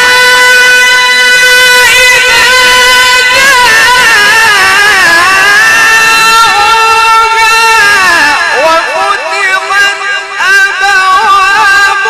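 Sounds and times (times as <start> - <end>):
man reciting in melodic chant: 0.0 - 12.0.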